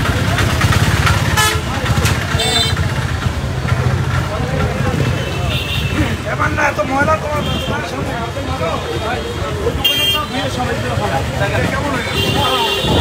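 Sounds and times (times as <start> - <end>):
crowd voices: 0.0 - 13.0
traffic rumble: 0.0 - 13.0
car horn toots: 1.4 - 1.7, 2.3 - 2.8, 9.2 - 10.5, 12.0 - 13.0.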